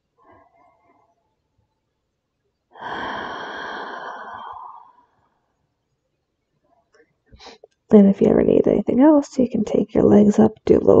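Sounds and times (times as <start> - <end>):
woman sighing: 2.8 - 5.0.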